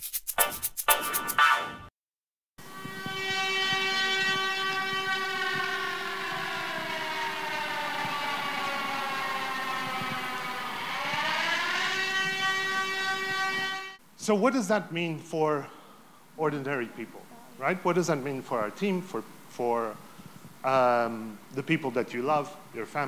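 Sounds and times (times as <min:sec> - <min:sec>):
air-raid siren wailing: 0:02.6 - 0:14.0.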